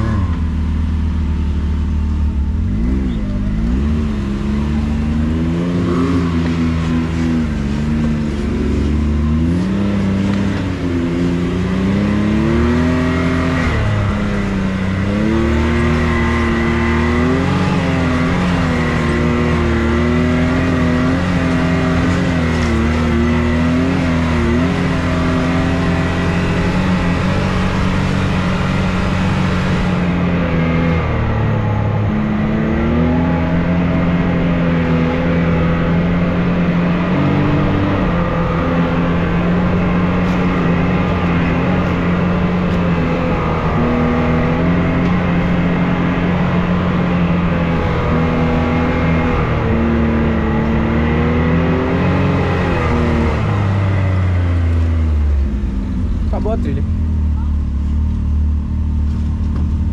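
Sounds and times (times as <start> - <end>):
off-road vehicle engine revving: 0.0 - 59.9.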